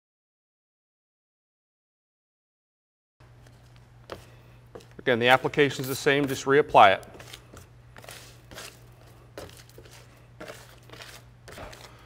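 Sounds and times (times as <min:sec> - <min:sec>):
low steady hum: 0:03.2 - 0:12.0
brush scraping on metal tabletop: 0:04.1 - 0:08.8, 0:09.4 - 0:12.0.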